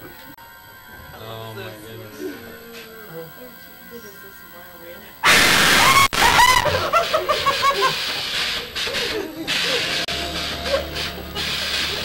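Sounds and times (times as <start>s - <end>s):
steady hissing: 6.9s - 12.0s.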